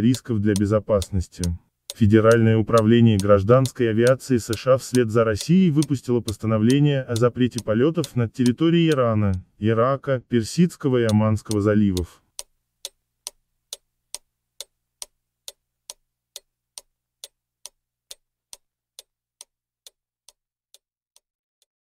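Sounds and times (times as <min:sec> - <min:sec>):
steady ticking: 0:00.0 - 0:09.6, 0:10.4 - 0:19.5.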